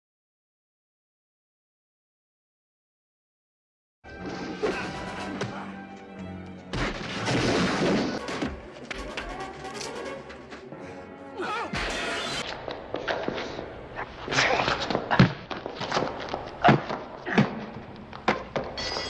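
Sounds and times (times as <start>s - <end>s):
fight scene music: 4.1s - 12.5s
punches and body blows: 14.4s - 18.7s.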